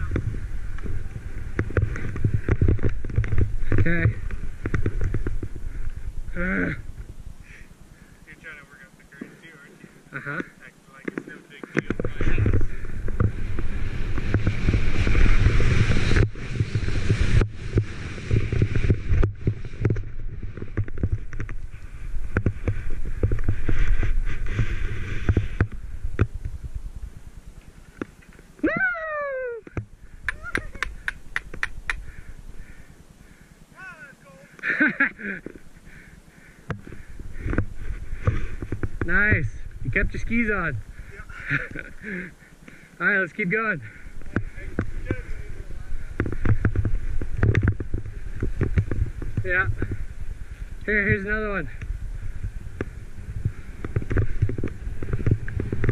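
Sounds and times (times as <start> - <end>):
wind rushing over microphone: 0.0 - 8.0, 11.6 - 34.0, 36.6 - 42.4, 43.2 - 55.9
skis running through snow: 11.2 - 26.8, 52.2 - 55.9
sharp clicks: 30.2 - 32.1.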